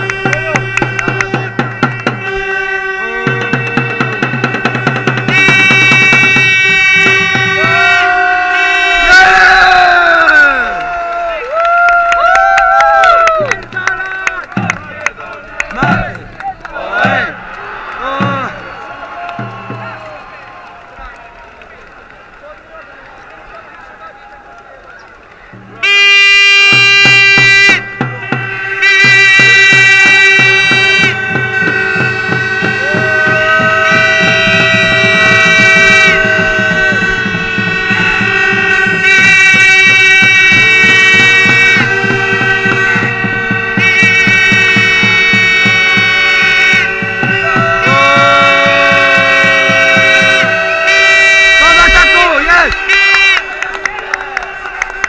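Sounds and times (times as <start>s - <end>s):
drum beating fast rhythm: 0.0s - 8.3s, 13.0s - 20.6s, 25.5s - 54.1s
reedy folk wind instruments: 0.0s - 55.0s
low crowd murmur: 13.4s - 29.8s.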